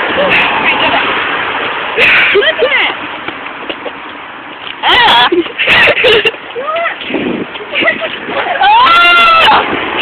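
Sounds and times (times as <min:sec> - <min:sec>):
child squealing: 0:08.5 - 0:09.6.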